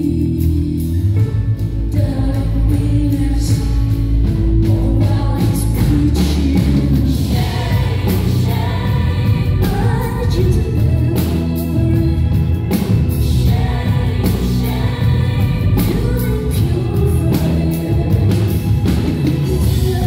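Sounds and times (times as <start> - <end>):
drums: 0.0 - 20.0
heavy bass: 0.0 - 20.0
keyboards: 0.0 - 20.0
woman singing: 0.0 - 20.0.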